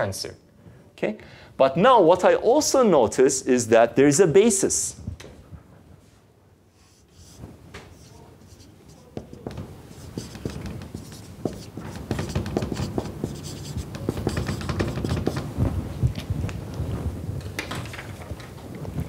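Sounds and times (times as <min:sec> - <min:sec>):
marker pen scratching on whiteboard: 0:06.7 - 0:15.6.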